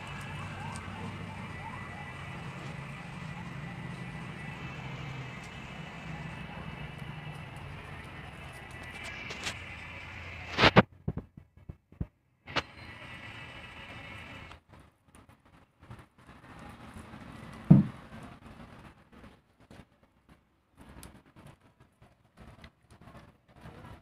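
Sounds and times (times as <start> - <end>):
loud dull thump: 17.7 - 18.0.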